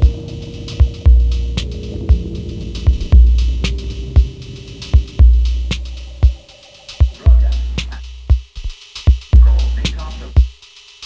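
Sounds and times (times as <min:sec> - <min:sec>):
deep bass note: 0:00.0 - 0:08.3
sparse percussion hits: 0:00.0 - 0:08.5.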